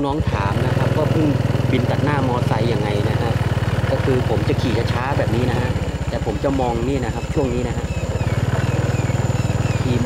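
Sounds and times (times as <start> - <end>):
motorcycle engine putter: 0.0 - 10.0.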